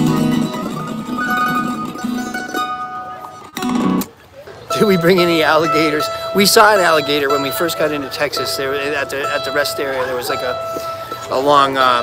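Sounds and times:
acoustic guitar strumming chords: 0.0 - 12.0
mandolin single notes: 0.0 - 12.0.

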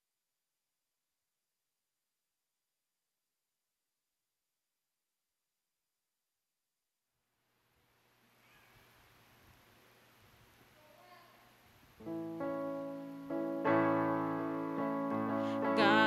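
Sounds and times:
electric keyboard chords: 12.0 - 16.0.

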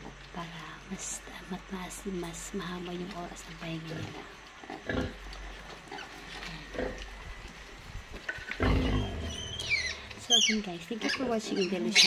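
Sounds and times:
pig grunting: 3.8 - 7.3, 8.3 - 12.0
piglets squealing: 8.7 - 12.0.

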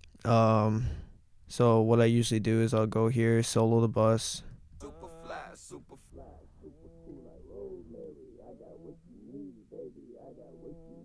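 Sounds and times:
man rapping without beat: 4.8 - 11.0.

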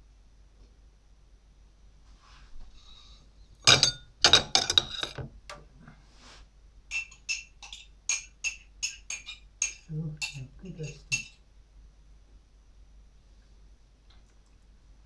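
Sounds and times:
spoon clinking against mug: 3.6 - 5.2, 6.9 - 11.4
kitchenware clattering: 3.6 - 5.3, 6.9 - 11.4.

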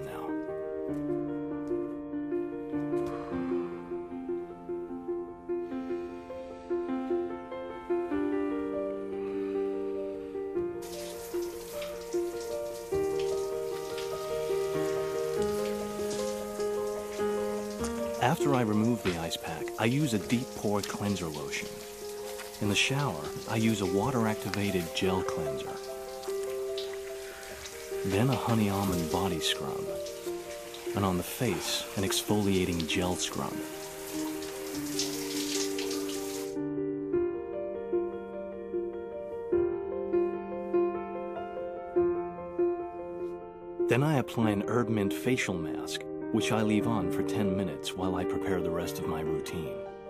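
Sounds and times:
slow background music: 0.0 - 50.0
running water spraying: 10.8 - 36.6.

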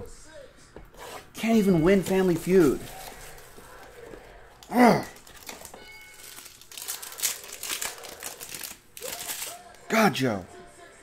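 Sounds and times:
foil wrapper crinkling and tearing: 4.9 - 9.8.

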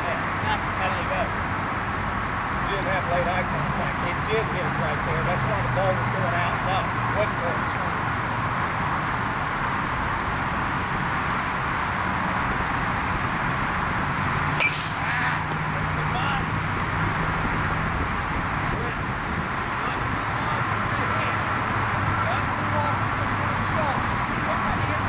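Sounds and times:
outdoor background hum: 0.0 - 25.0
baseball bat striking ball: 14.4 - 16.0.

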